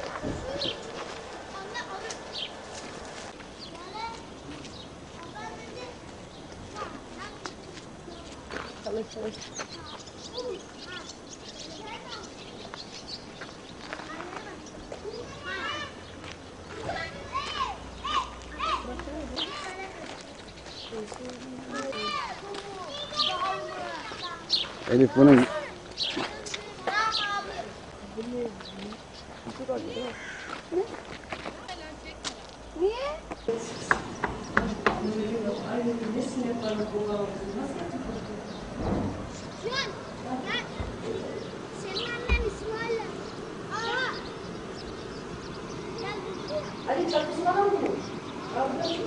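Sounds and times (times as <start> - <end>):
indistinct talking: 0.0 - 49.0
small birds chirping: 0.0 - 49.0.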